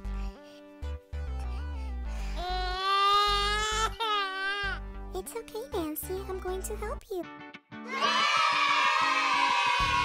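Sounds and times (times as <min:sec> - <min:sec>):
background music: 0:00.0 - 0:10.0
child wailing: 0:02.4 - 0:04.8, 0:07.9 - 0:10.0.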